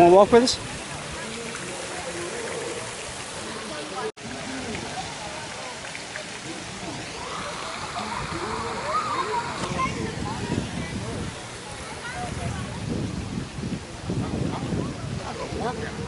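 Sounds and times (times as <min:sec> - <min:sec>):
water splashing into pool: 0:00.0 - 0:16.0
distant voices: 0:00.6 - 0:13.2.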